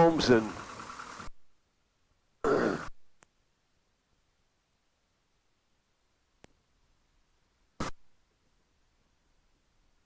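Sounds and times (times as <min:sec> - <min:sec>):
faint click: 0:03.2 - 0:03.4, 0:06.4 - 0:06.6.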